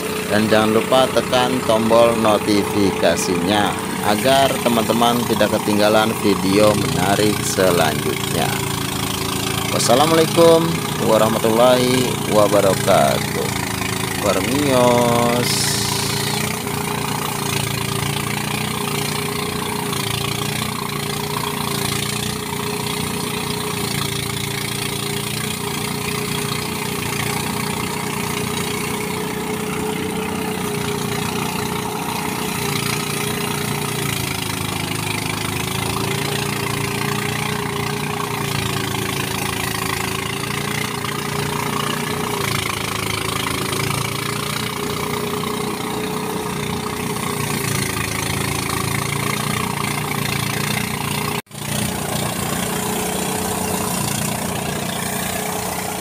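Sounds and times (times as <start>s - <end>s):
rice thresher machine drone: 0.0s - 56.0s.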